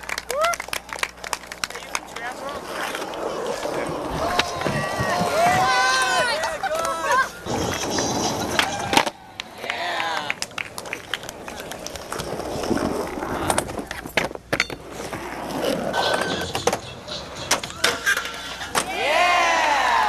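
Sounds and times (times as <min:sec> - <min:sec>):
skateboard wheels rolling: 0:00.0 - 0:20.0
skateboard clacking on ground: 0:00.3 - 0:19.0
people's voices: 0:01.5 - 0:12.4.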